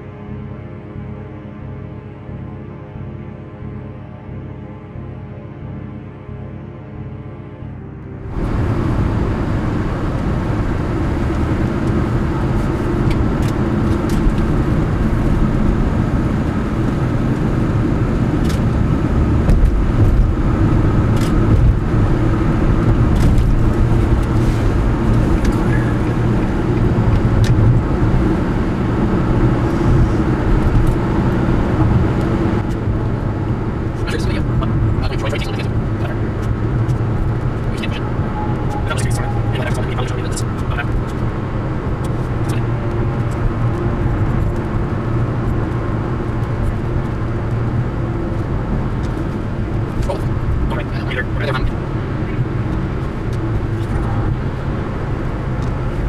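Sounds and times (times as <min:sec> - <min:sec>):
car road and engine noise: 0:00.0 - 0:56.0.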